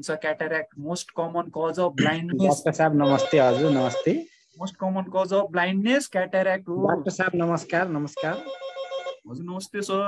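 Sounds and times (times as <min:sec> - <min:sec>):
man speaking: 0:00.0 - 0:08.5.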